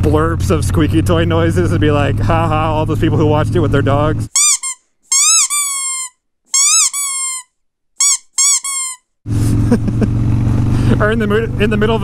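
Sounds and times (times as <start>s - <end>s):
motorcycle engine: 0.0s - 4.3s, 9.3s - 12.0s
squeaky toy squeaks: 4.3s - 9.1s.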